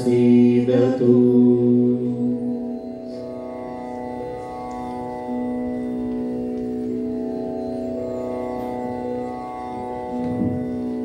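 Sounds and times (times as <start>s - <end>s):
organ-like keyboard chords: 0.0s - 11.0s.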